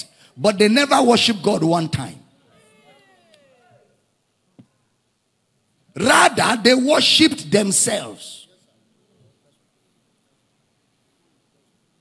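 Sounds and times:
faint high-pitched falling cry: 0:02.5 - 0:03.9.

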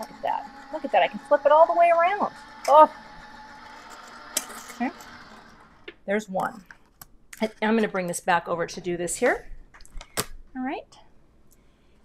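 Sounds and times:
die-cutting machine running: 0:00.0 - 0:05.9.

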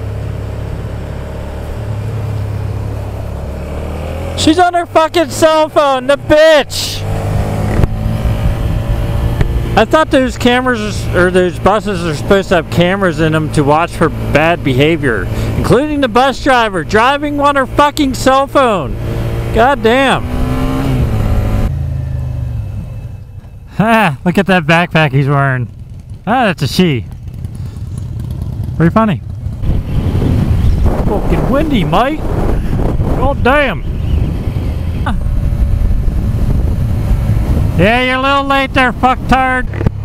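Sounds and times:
road noise hiss: 0:00.0 - 0:16.1
vehicle engines humming in traffic: 0:00.0 - 0:40.0.

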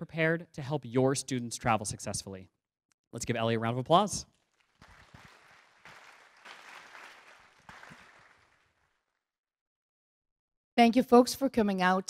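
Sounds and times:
faint audience applause: 0:04.5 - 0:09.0.

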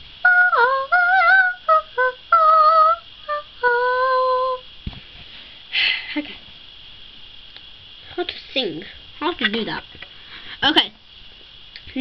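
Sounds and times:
child singing: 0:00.2 - 0:04.6.

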